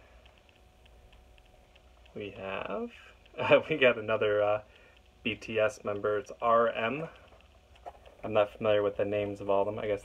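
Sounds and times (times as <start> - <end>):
faint low hum: 0.0 - 10.0
faint ticking: 0.0 - 10.0.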